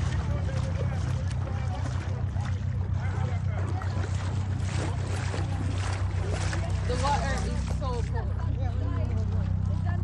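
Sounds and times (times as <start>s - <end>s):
distant voices talking: 0.0s - 10.0s
steady low rumble: 0.0s - 10.0s.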